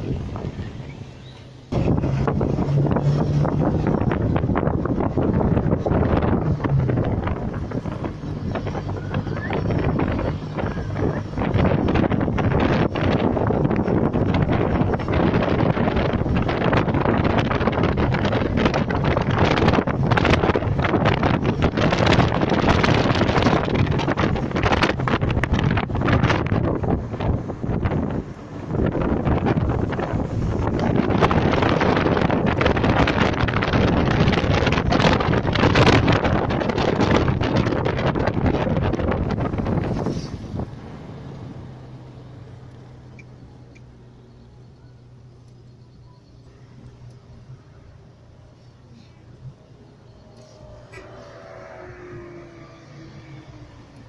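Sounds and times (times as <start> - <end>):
wind rushing over microphone: 0.0 - 44.6, 46.8 - 54.0
car road noise: 0.0 - 54.0
low engine hum: 0.0 - 54.0.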